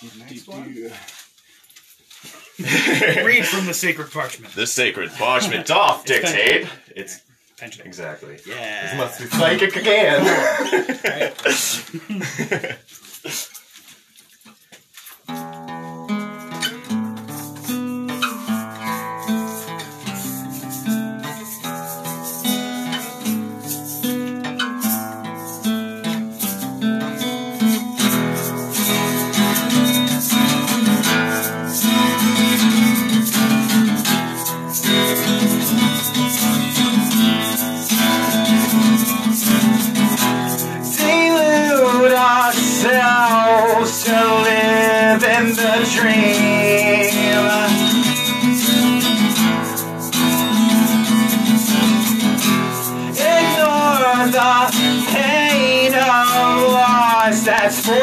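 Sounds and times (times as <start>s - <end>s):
person laughing: 2.6s - 3.7s, 9.6s - 13.6s
acoustic guitar plucking: 2.8s - 6.7s, 8.7s - 10.7s, 15.0s - 58.0s
person singing: 9.6s - 10.8s, 40.8s - 49.4s, 53.0s - 58.0s.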